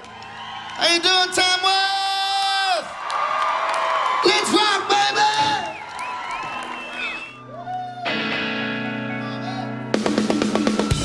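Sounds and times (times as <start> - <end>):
crowd cheering and whistling: 0.0 - 8.4, 10.3 - 11.0
live rock band playing: 7.4 - 11.0.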